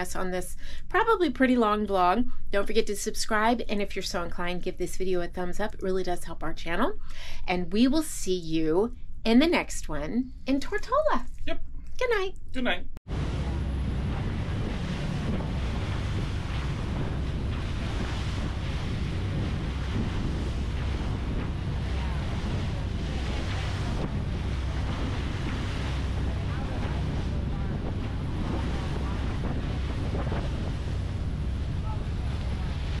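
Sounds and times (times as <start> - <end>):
boat rushing through water: 13.1 - 33.0
wind buffeting microphone: 13.1 - 33.0.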